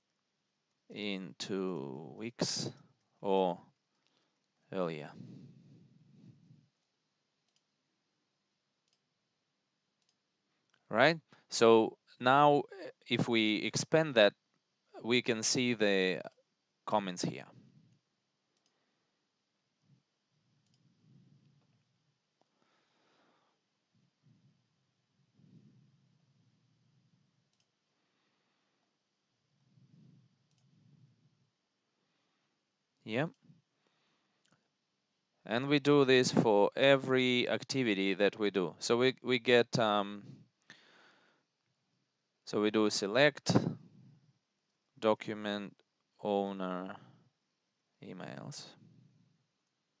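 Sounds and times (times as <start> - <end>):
faint mouse clicks: 6.7 - 7.8, 8.8 - 9.1, 10.0 - 10.9, 17.2 - 18.8, 19.8 - 22.6, 26.7 - 27.9, 30.1 - 31.1, 34.4 - 34.7
faint low rumble: 23.8 - 32.2.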